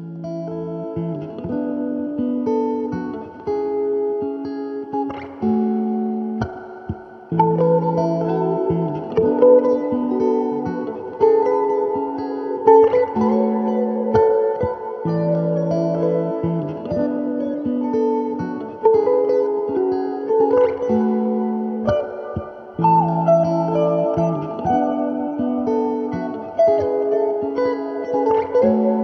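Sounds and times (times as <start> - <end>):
electric guitar ambient melody: 0.0 - 29.0.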